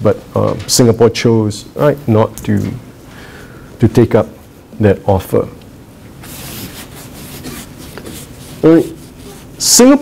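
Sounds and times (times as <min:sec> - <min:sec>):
soft rustling rubbing noise: 0:06.1 - 0:10.0.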